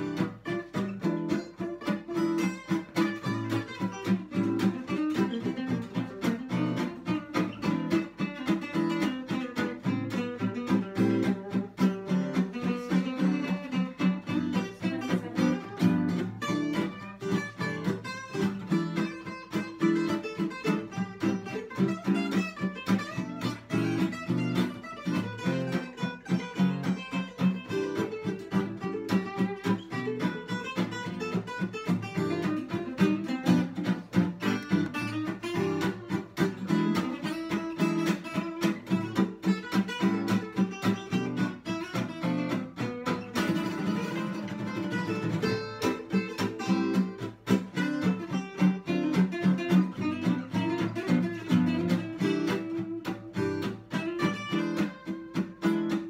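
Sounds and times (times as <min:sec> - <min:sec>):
acoustic guitars playing swing jazz: 0:00.0 - 0:56.0.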